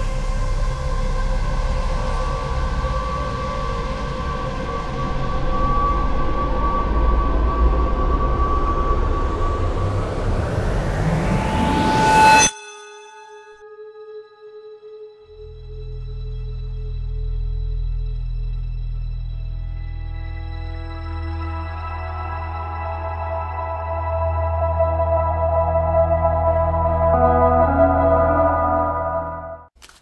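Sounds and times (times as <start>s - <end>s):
ambient drone music: 0.0s - 12.6s, 13.6s - 29.7s
rising whoosh: 1.4s - 12.5s
held ringing tone: 11.4s - 14.8s.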